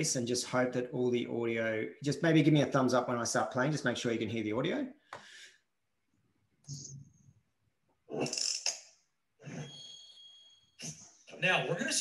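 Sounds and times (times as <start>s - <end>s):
high ringing tones: 9.5s - 10.8s.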